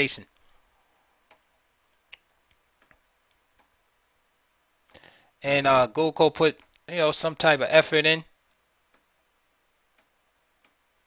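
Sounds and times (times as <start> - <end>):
computer mouse clicks: 1.2 - 1.5, 10.0 - 10.8.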